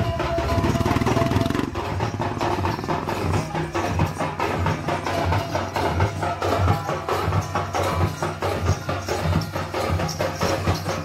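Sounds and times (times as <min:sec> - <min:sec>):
barrel drums played fast: 0:00.0 - 0:11.0.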